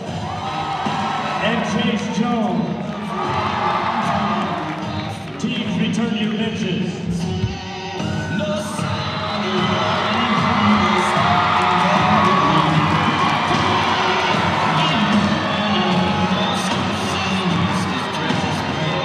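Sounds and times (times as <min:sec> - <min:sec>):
crowd cheering and shouting: 0:00.0 - 0:19.0
loud music: 0:00.0 - 0:19.0.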